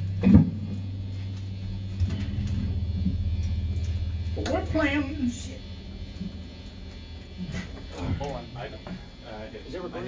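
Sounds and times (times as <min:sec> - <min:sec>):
low steady hum: 0:00.0 - 0:10.0
faint murmurs: 0:01.8 - 0:10.0.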